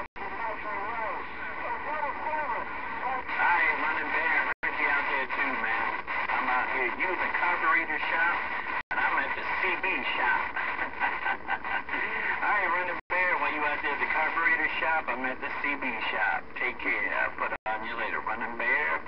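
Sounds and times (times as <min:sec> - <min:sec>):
garbled voices over radio speaker: 0:00.0 - 0:19.0.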